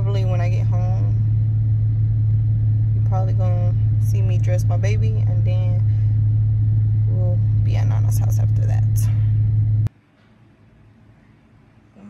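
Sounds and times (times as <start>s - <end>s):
car engine idling: 0.0s - 9.9s.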